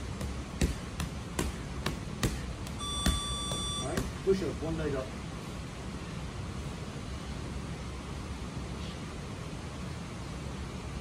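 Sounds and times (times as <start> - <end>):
punches on heavy bag: 0.2 - 4.2
electronic timer beeping: 2.8 - 4.0.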